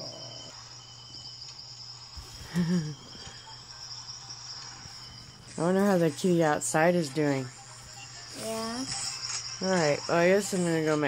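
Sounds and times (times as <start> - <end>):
high-pitched drone: 0.0 - 11.0.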